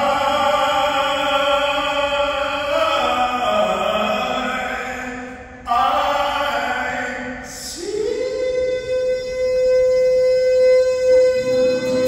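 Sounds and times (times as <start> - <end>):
man singing live: 0.0 - 12.0.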